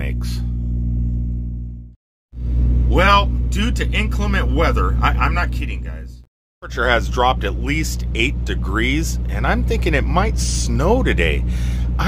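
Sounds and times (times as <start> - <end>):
diesel engine idling: 6.6 - 12.0.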